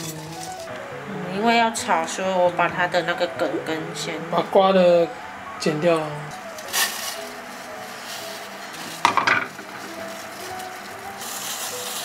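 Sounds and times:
hot water hissing in pot: 6.4 - 12.0
kitchen clatter: 6.4 - 12.0.

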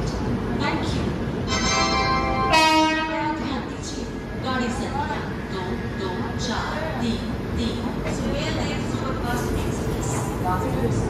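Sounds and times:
train coaches rumbling: 0.0 - 11.0
locomotive air horn: 1.5 - 3.3.

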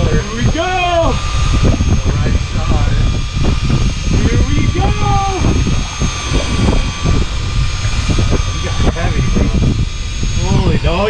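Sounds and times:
faint steady whine: 0.0 - 11.0
outboard motors idling: 0.0 - 11.0
wind rumble: 0.0 - 11.0
man's voice: 4.1 - 6.2, 7.8 - 11.0.

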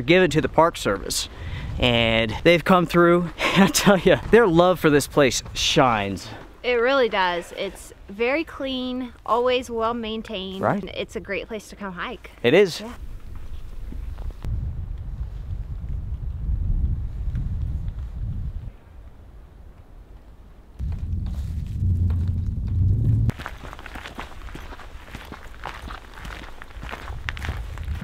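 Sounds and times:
wind rumbling on microphone: 0.4 - 2.5, 3.3 - 6.7, 13.0 - 28.0
footsteps crunching on rocky trail: 3.4 - 7.7, 20.8 - 28.0.

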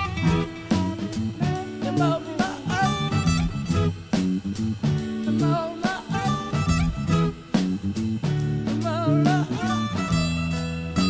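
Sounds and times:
man singing: 0.0 - 3.4, 5.3 - 7.1, 8.8 - 10.2
acoustic guitars bluesy groove: 0.0 - 11.0.

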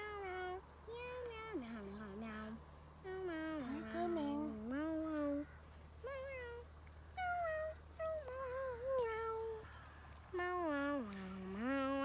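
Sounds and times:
child making sing-song sounds: 0.0 - 9.7, 10.4 - 12.0.

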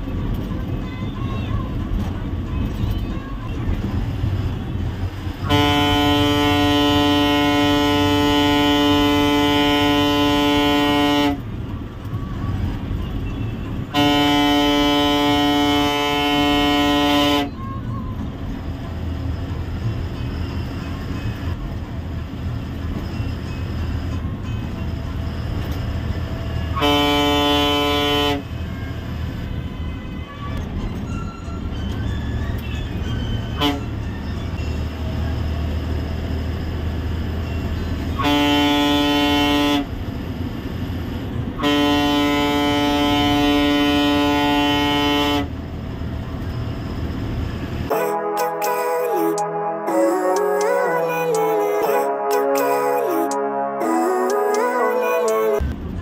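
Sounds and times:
diesel bus engine running: 0.0 - 48.4, 52.4 - 56.0
bus horn blasts: 5.2 - 11.7, 13.8 - 17.7, 26.6 - 28.7, 33.4 - 34.7, 37.4 - 40.0, 41.5 - 45.6, 47.9 - 55.8.

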